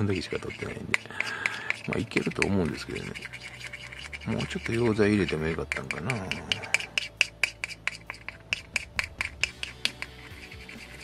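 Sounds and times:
faint background music: 0.0 - 11.0
stick scraping a plastic cup: 0.0 - 11.0.

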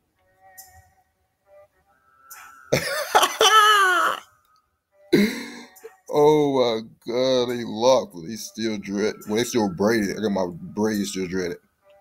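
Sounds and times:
man's long falling cry: 2.7 - 4.3
man's cough-like bursts: 2.8 - 4.2.

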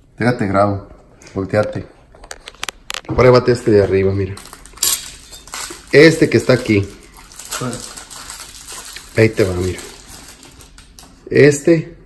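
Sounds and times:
room noise: 0.0 - 12.0.

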